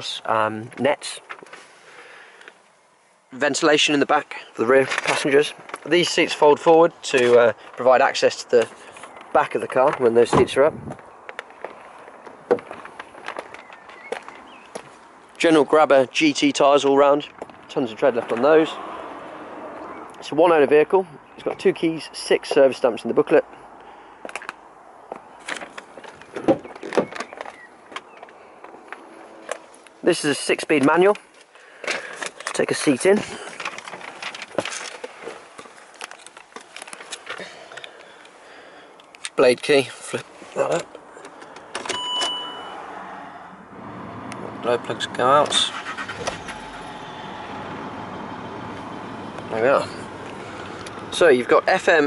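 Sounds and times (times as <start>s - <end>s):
outdoor background noise: 0.0s - 52.0s
footsteps on tarmac: 10.9s - 15.1s
rustling: 31.2s - 38.4s.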